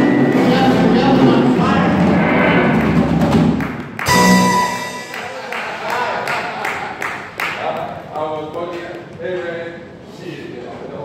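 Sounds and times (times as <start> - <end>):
rock band playing: 0.0 - 5.8.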